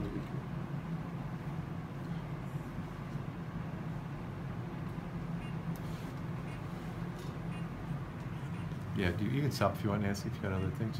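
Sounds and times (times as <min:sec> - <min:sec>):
steady machine hum: 0:00.0 - 0:10.9.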